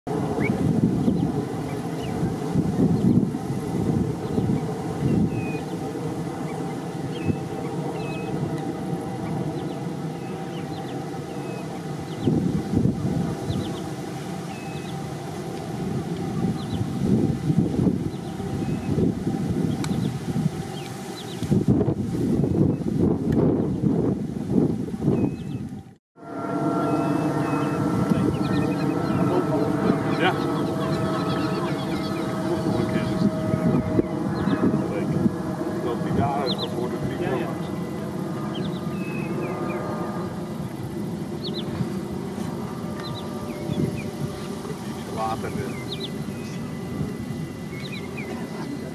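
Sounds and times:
steady hum with held tones: 0.1s - 48.9s
wind noise on microphone: 0.1s - 48.9s.

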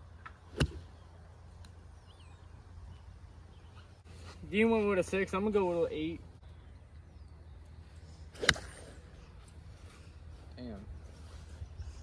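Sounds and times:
faint outdoor hum: 0.0s - 12.0s
golf club striking ball: 0.3s - 1.0s, 8.4s - 8.9s.

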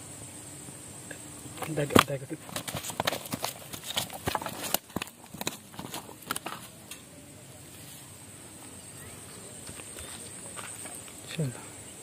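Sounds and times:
faint steady hiss: 0.0s - 12.0s
fish flapping on dirt: 1.6s - 6.8s.

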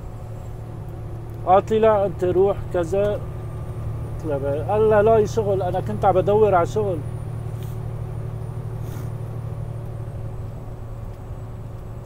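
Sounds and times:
vehicle cruising engine and road noise: 0.0s - 12.0s.

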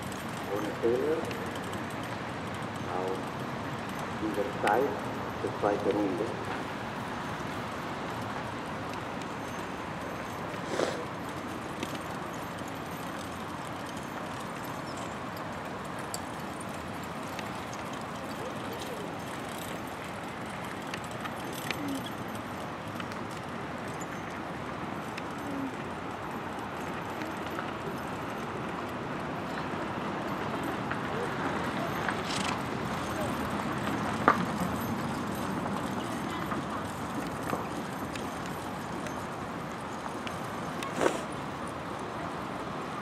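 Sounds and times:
carriage wheels rumbling: 0.0s - 42.2s.

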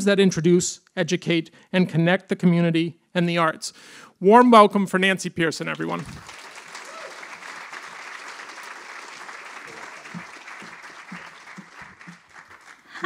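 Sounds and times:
audience applauding: 5.7s - 13.0s.

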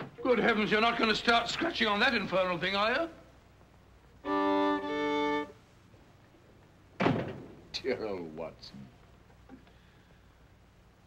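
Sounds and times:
man speaking: 0.2s - 3.2s, 7.8s - 9.0s
violin bowing held notes: 4.2s - 5.6s.

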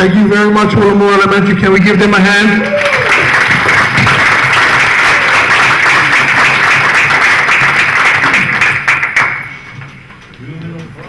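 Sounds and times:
audience applauding: 2.6s - 9.8s.

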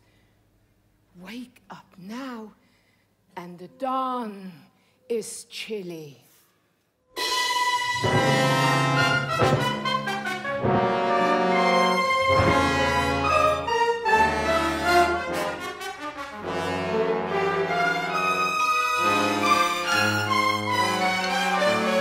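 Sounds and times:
orchestra playing loudly with brass: 7.2s - 22.0s.

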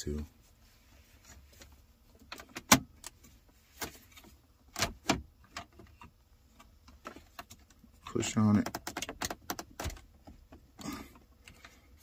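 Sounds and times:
plastic clicks and knocks: 8.5s - 10.7s.

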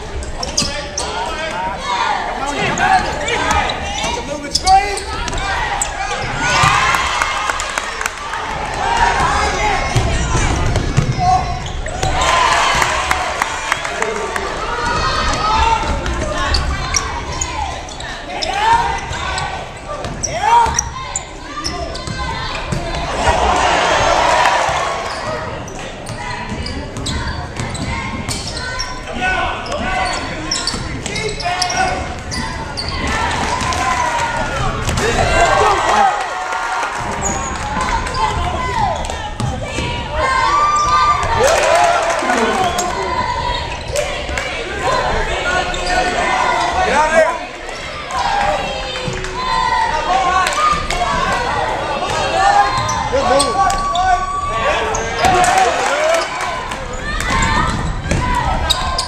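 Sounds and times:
crowd voices: 0.0s - 59.0s
sneakers squeaking: 0.2s - 6.9s, 9.2s - 12.7s, 14.8s - 23.4s, 24.6s - 33.9s, 37.0s - 49.7s, 50.6s - 59.0s
people calling out: 37.2s - 59.0s.

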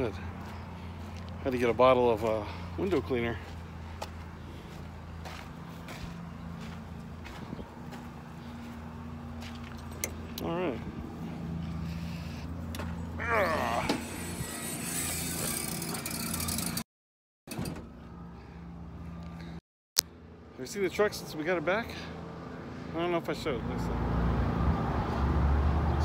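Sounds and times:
diesel truck engine idling: 0.0s - 13.1s.

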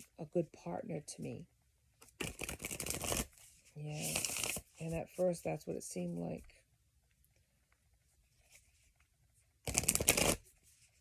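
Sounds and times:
cards being riffled: 2.0s - 3.4s, 4.0s - 4.8s, 9.6s - 10.5s.

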